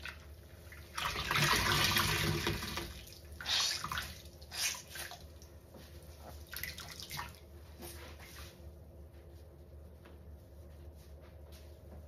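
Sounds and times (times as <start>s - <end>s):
sponge squelching in soapy water: 0.0s - 8.7s.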